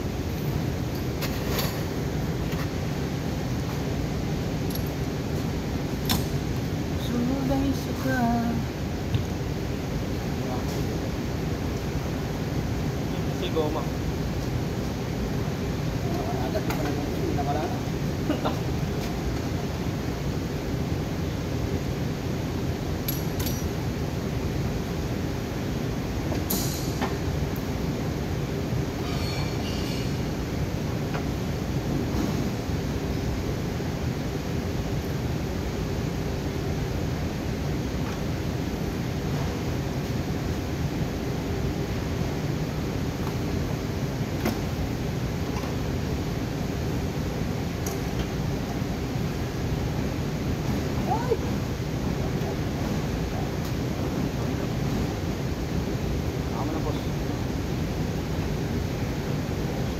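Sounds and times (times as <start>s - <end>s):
workshop background rumble: 0.0s - 59.9s
light metallic clinks: 23.0s - 23.8s.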